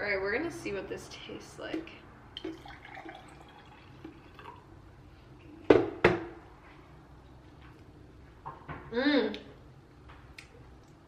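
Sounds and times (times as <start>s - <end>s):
juice pouring into a glass: 2.3s - 4.8s.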